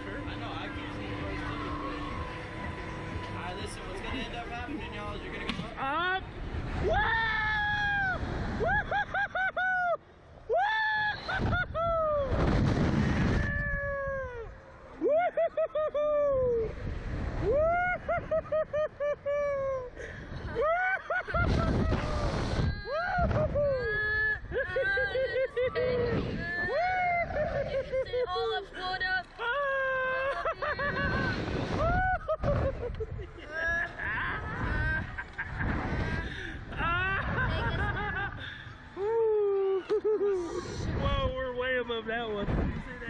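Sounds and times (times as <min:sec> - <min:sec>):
wind rushing over microphone: 0:11.3 - 0:14.5, 0:21.2 - 0:24.6, 0:25.8 - 0:27.8, 0:30.6 - 0:33.4, 0:34.2 - 0:38.4, 0:40.6 - 0:41.6.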